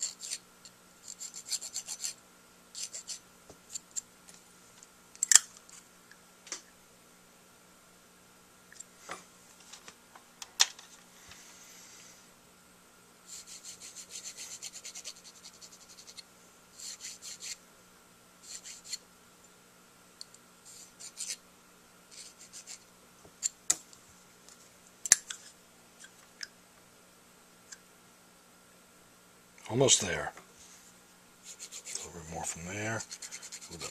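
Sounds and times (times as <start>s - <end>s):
needle file scraping mouthpiece: 0.0s - 0.4s, 1.0s - 2.2s, 2.8s - 4.0s, 13.3s - 16.2s, 16.8s - 17.6s, 18.4s - 19.0s, 20.7s - 21.4s, 31.4s - 32.1s, 33.0s - 33.9s.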